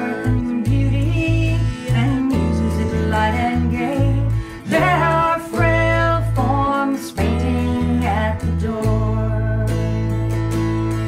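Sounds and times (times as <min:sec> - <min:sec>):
acoustic guitar: 0:00.0 - 0:11.0
electric bass line: 0:00.0 - 0:11.0.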